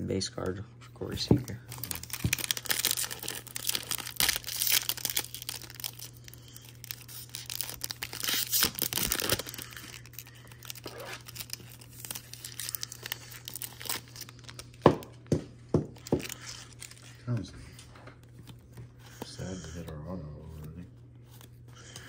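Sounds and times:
cards rustling: 1.0s - 15.3s, 15.9s - 22.0s
foil wrapper crinkling and tearing: 1.7s - 15.2s, 15.9s - 17.4s.

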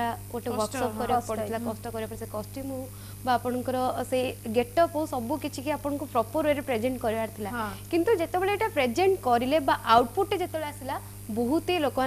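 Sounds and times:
steady low hum: 0.0s - 12.0s
woman talking: 0.0s - 12.0s.

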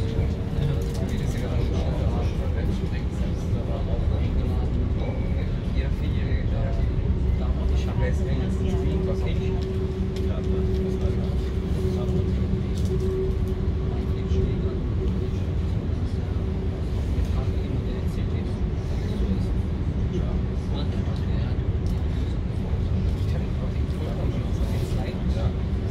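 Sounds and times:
train drive hum: 0.0s - 25.9s
train wheels rumbling on rails: 0.0s - 25.9s.

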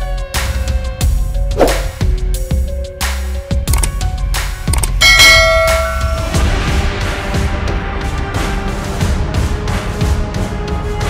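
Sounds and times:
dramatic background music: 0.0s - 11.0s
bell-like strike: 5.0s - 6.8s.

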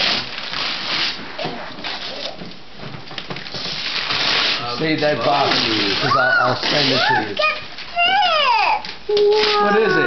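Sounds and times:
wrapping paper rustling: 0.0s - 10.0s
person speaking: 9.1s - 10.0s.

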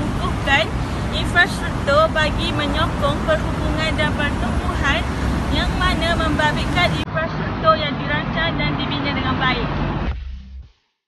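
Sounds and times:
woman talking: 0.0s - 9.7s
low rumble of road traffic: 0.0s - 10.1s.

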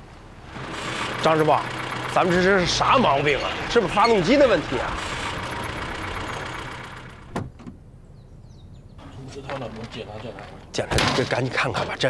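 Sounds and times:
vehicle engine idling: 0.0s - 10.7s.

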